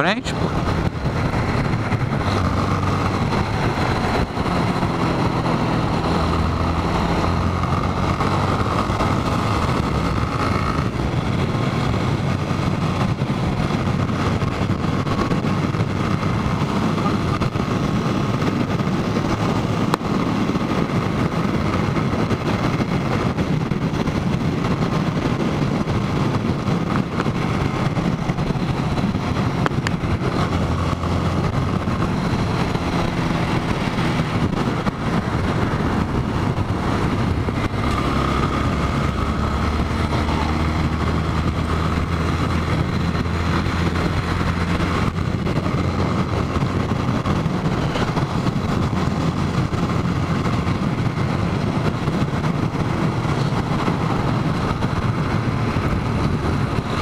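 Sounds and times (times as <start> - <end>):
motorcycle engine running: 0.0 - 57.0
wind rush on microphone: 0.0 - 57.0.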